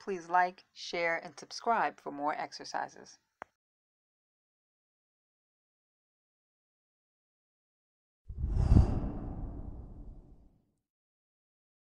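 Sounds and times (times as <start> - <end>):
whoosh: 8.3 - 10.4.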